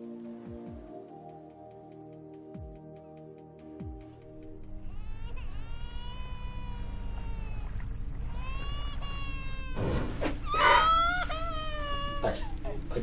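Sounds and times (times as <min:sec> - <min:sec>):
high-pitched crying wails: 0:04.8 - 0:07.7, 0:08.3 - 0:09.8, 0:10.4 - 0:12.8.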